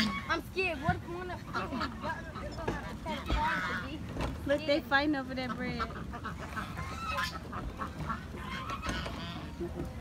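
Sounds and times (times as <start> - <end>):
ducks quacking: 0.0 - 10.0
geese honking: 1.1 - 4.0, 4.8 - 9.8.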